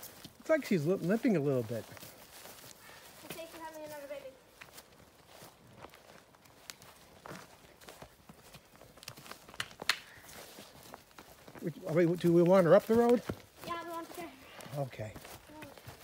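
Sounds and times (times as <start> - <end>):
cow footsteps: 0.0 - 16.0
person footsteps on tarmac: 0.0 - 16.0.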